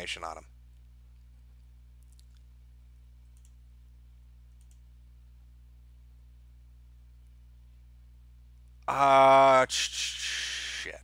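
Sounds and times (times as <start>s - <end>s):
low electrical hum: 0.0s - 11.0s
computer mouse clicks: 3.2s - 3.6s, 4.5s - 4.8s.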